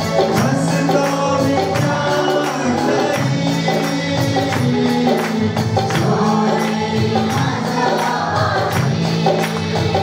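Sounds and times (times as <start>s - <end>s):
group singing worship song: 0.0s - 10.0s
instrumental accompaniment: 0.0s - 10.0s.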